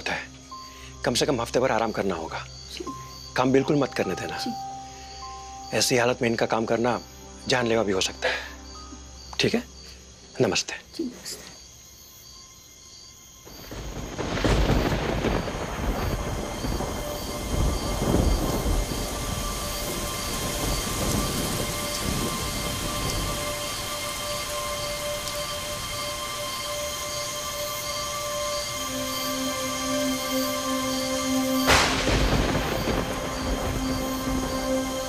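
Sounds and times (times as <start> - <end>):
heavy rain falling: 13.5 - 35.0
thunder rumbling: 13.5 - 35.0.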